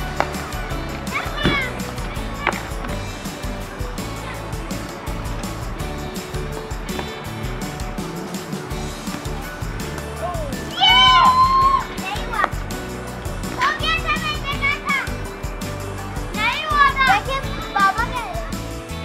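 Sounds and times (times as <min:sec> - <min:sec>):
children shouting: 0:00.0 - 0:05.3, 0:10.2 - 0:12.6, 0:13.5 - 0:15.2, 0:16.3 - 0:18.6
background music: 0:00.0 - 0:19.0.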